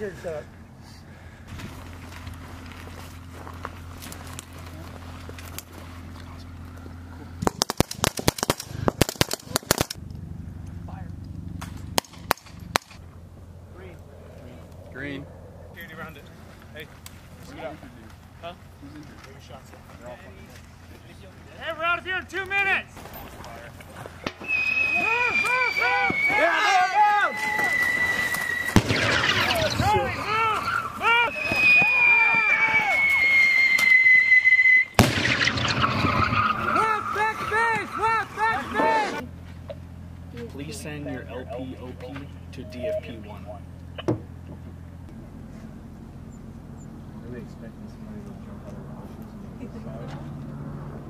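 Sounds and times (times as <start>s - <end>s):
rifle shots: 7.4s - 10.0s, 28.7s - 30.2s, 35.0s - 36.4s
falling pyrotechnic whistle: 24.4s - 36.8s
sharp bang: 28.8s - 30.1s, 35.0s - 36.4s.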